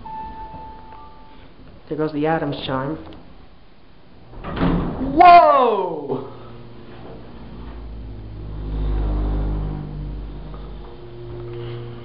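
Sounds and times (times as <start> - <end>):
loud low elevator rumble: 6.1 - 12.0
elevator pump motor hum: 6.2 - 12.0.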